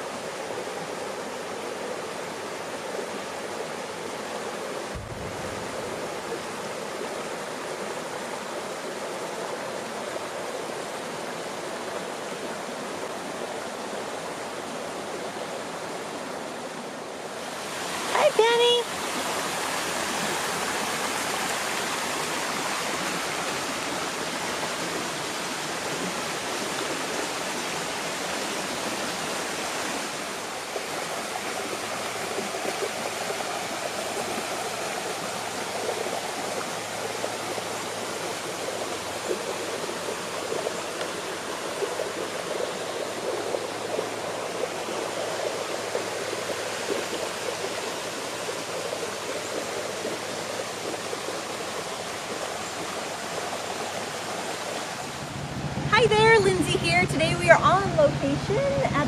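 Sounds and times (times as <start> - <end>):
stream rushing over rapids: 0.0 - 59.0.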